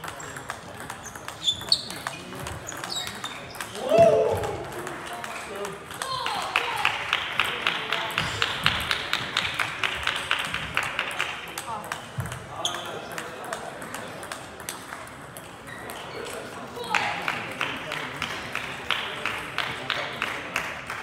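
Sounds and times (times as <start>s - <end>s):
table tennis ball clicking: 0.0s - 3.8s
loud shout: 3.8s - 4.7s.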